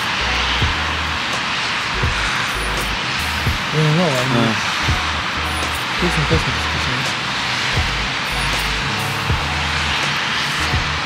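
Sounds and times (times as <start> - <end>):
sustained low bass notes: 0.0 - 1.3, 1.9 - 7.1, 7.7 - 10.0, 10.6 - 11.0
steady synth wash: 0.0 - 11.0.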